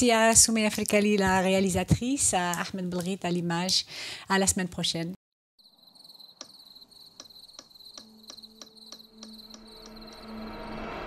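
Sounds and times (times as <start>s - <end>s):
crickets chirping: 5.6s - 11.0s.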